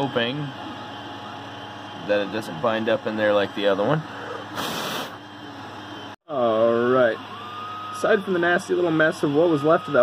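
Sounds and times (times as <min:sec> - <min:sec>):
three d printer running: 0:00.0 - 0:04.5, 0:05.2 - 0:10.0.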